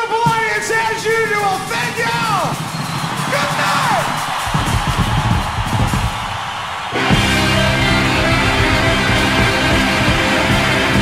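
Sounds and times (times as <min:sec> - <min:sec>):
live rock band: 0:06.9 - 0:11.0.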